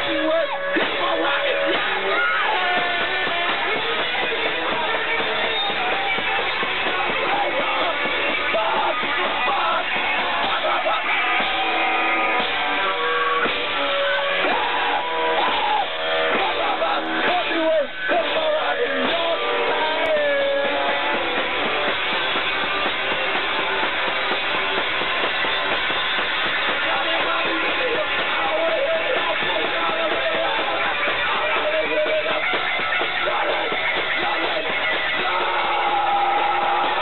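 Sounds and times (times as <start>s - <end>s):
person singing: 0.0s - 12.4s, 14.4s - 21.7s, 26.6s - 37.0s
amplified electric guitar: 0.0s - 37.0s
rock band playing live: 0.0s - 37.0s.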